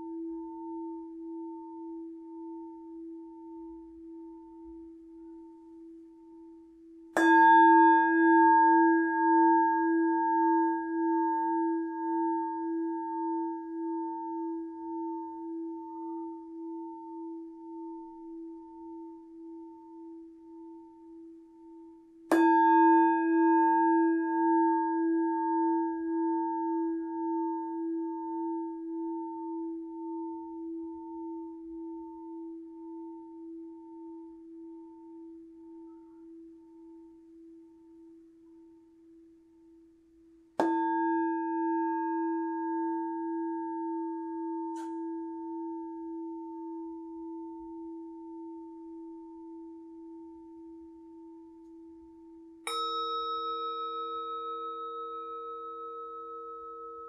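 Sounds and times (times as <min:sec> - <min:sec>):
higher-pitched bowl struck: 0:07.1 - 0:19.0, 0:22.3 - 0:29.4, 0:40.6 - 0:49.5, 0:52.6 - 0:57.0
singing bowl ringing: 0:07.2 - 0:37.5, 0:40.6 - 0:57.0.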